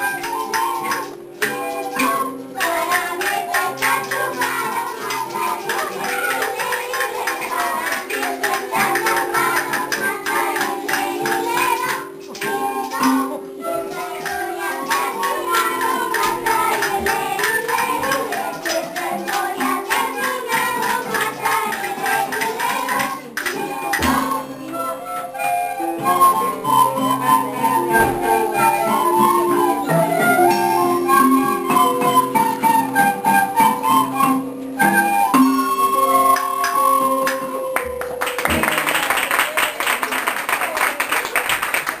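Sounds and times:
audience clapping: 0:00.0 - 0:24.2, 0:36.3 - 0:42.0
children singing: 0:00.0 - 0:37.8
light percussion: 0:00.0 - 0:41.4.

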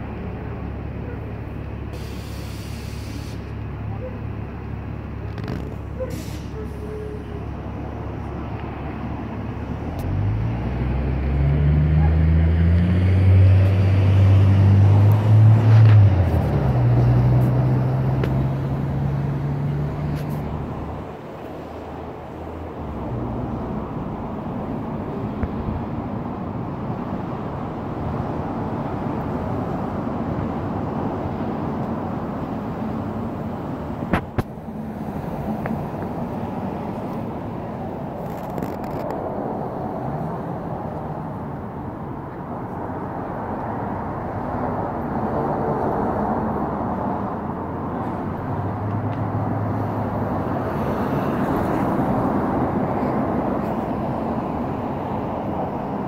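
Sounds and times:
street traffic: 0:00.0 - 0:56.0
heavy vehicle engine passing: 0:04.7 - 0:25.8.

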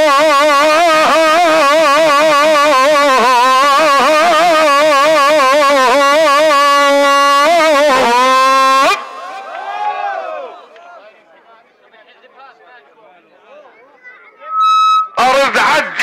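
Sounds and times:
man singing long vowel with vibrato: 0:00.0 - 0:09.0.

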